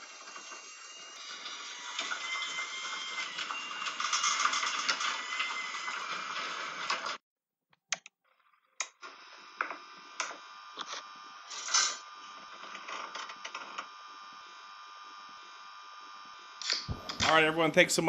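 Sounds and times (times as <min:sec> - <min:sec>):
clicks: 0:07.8 - 0:08.1.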